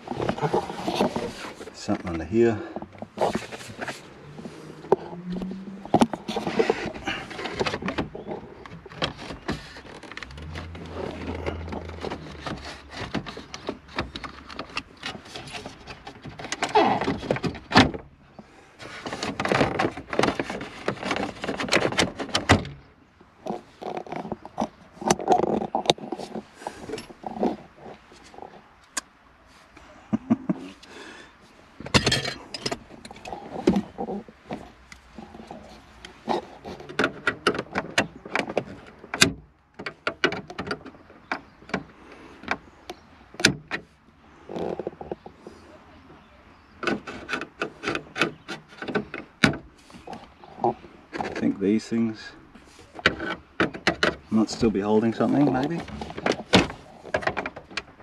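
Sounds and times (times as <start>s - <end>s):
plastic trim clicking and scraping: 2.7s - 18.0s, 18.8s - 29.1s, 31.8s - 43.9s, 46.8s - 51.5s, 52.9s - 58.0s.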